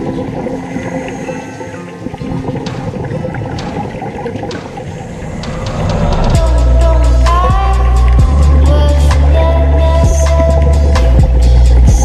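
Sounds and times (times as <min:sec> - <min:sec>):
underwater bubbling of exhaled air: 0:00.0 - 0:12.0.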